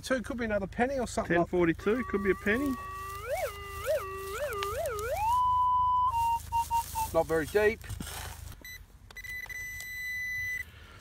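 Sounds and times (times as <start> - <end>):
metal detector tone and beeps: 1.8 - 7.5, 8.6 - 10.8.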